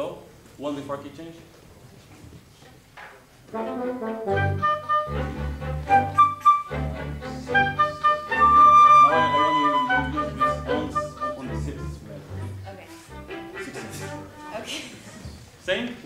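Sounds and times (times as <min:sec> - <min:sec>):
orchestra playing: 0:03.4 - 0:14.9.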